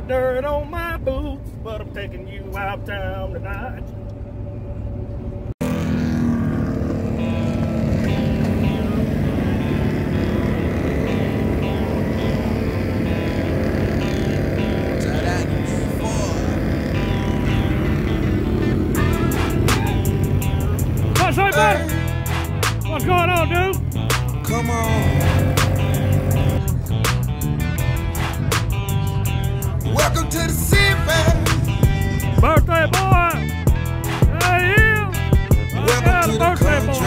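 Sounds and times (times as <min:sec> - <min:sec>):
vehicle engine running: 0:01.3 - 0:37.0
music playing: 0:07.0 - 0:37.0
voices shouting: 0:08.2 - 0:26.5
man singing: 0:21.2 - 0:22.1, 0:24.4 - 0:25.8, 0:29.8 - 0:33.4, 0:34.3 - 0:37.0.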